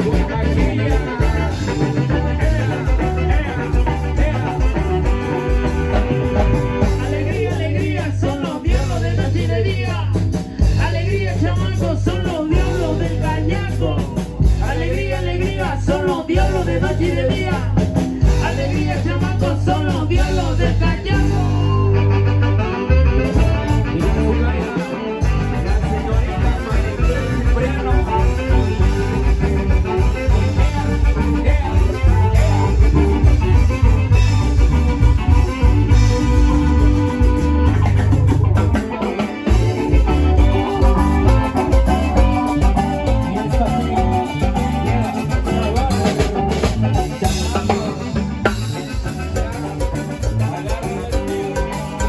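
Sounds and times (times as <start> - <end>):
live band playing latin dance music: 0.0 - 52.0.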